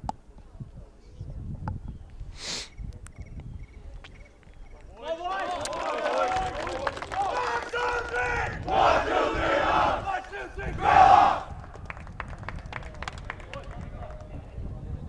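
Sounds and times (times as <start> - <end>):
group shout: 7.2 - 11.5
team chanting together: 7.3 - 11.5.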